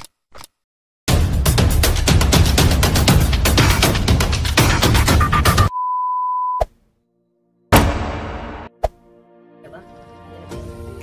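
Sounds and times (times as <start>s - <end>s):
long steady beep: 5.7s - 6.6s
intro music: 7.7s - 8.7s.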